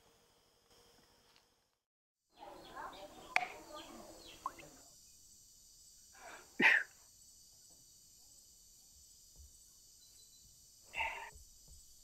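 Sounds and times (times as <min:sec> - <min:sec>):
loud burst of breath: 0:06.1 - 0:06.9.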